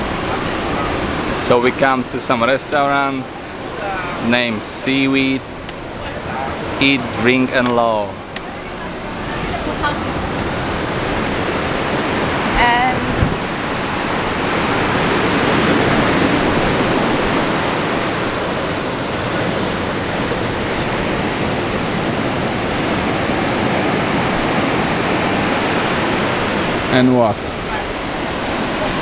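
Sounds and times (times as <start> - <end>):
waves breaking on beach: 0.0 - 29.0.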